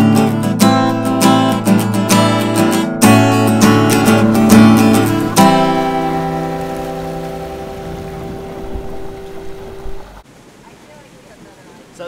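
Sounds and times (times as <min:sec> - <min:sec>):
strummed acoustic guitar chord: 0:00.0 - 0:09.9
low rumble: 0:03.5 - 0:10.2.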